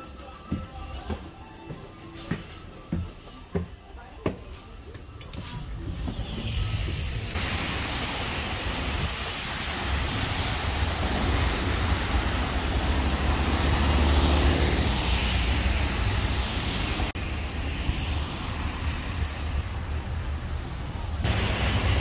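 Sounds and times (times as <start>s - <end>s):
cars driving on wet pavement: 6.0s - 22.0s.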